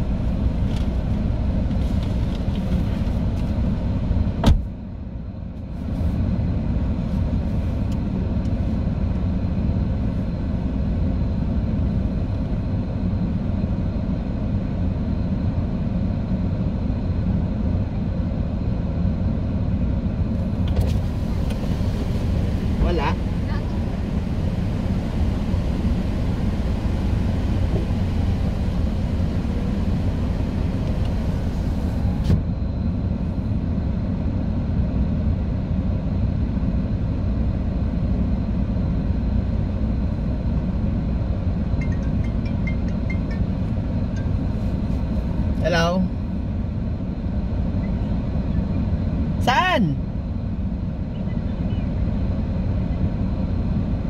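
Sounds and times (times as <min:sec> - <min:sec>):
car engine idling rumble: 0:00.0 - 0:35.4, 0:36.3 - 0:49.3.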